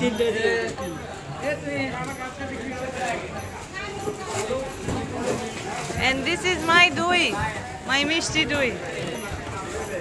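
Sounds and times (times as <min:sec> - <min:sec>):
indistinct voices and chatter: 0:00.0 - 0:10.0.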